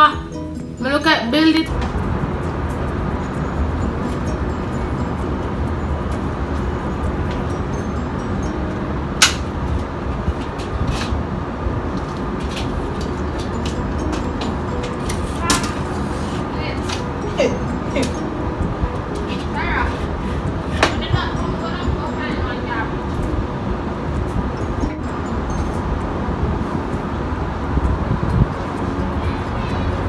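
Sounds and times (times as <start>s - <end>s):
city traffic: 0.0s - 30.0s
wind rumble: 0.0s - 30.0s.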